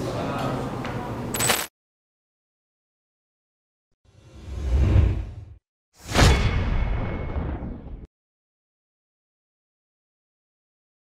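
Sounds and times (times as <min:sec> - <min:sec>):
loud hit: 0:06.0 - 0:08.1.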